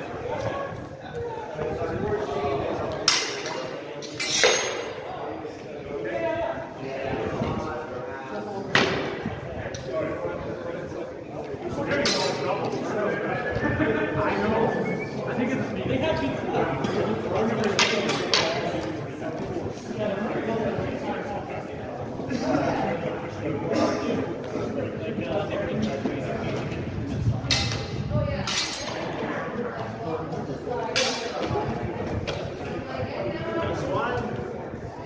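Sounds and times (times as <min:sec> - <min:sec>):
voices talking in background: 0:00.0 - 0:35.0.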